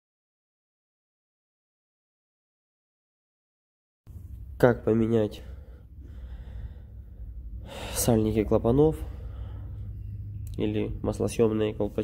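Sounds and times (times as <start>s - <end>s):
low steady hum: 4.1s - 12.0s
person breathing in: 5.4s - 8.1s, 9.0s - 10.0s.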